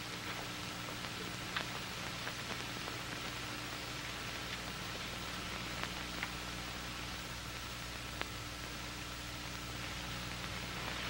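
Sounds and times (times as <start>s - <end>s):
recording hiss and hum: 0.0s - 11.0s
faint clicks: 0.2s - 6.4s, 8.1s - 8.4s.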